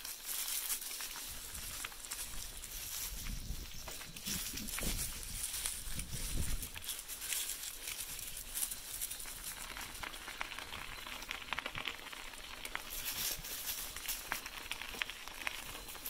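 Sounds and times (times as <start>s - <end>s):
bicycle tyres rolling on gravel and leaves: 0.0s - 16.0s.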